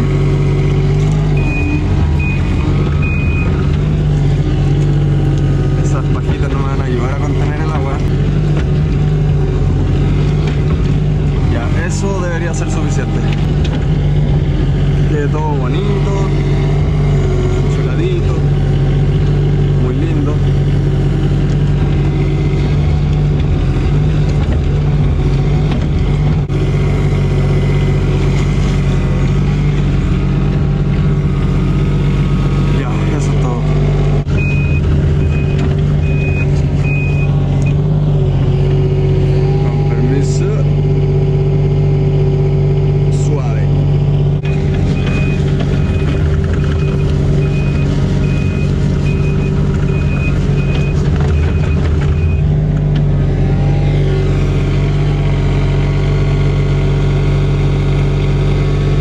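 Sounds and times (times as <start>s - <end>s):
diesel engine running: 0.0s - 59.0s
hydraulics whining: 0.0s - 59.0s
travel alarm beeps: 1.3s - 3.6s, 34.4s - 37.8s, 44.5s - 52.5s.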